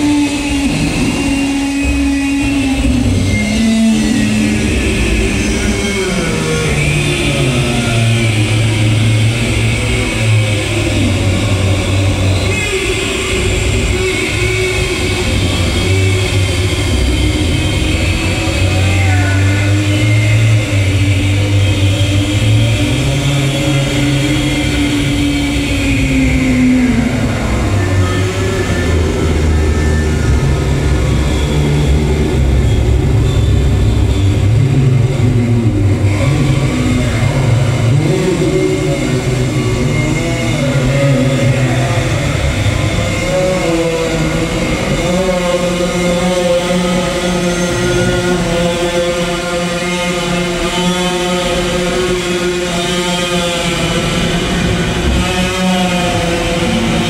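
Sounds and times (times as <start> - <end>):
noisy wash: 0.0 - 57.0
rumbling low drone: 0.0 - 57.0.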